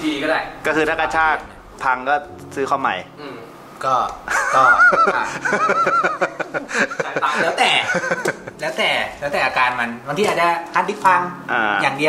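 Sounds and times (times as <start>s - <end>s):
laughter bursts: 4.3s - 8.6s.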